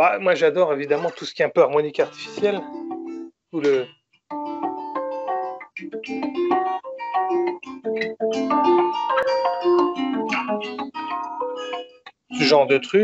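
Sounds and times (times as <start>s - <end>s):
fingerpicked acoustic guitar: 2.0s - 13.0s.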